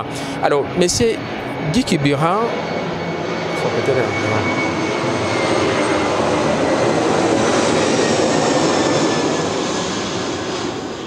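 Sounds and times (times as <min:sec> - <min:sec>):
aircraft engine overhead: 0:00.0 - 0:11.0.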